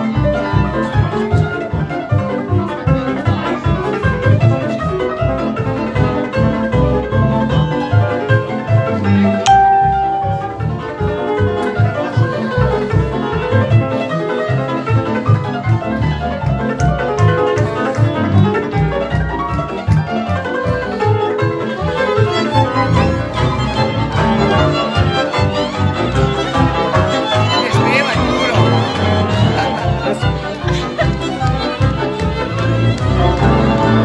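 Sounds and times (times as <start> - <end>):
violins playing: 9.5 - 11.4, 18.2 - 34.0.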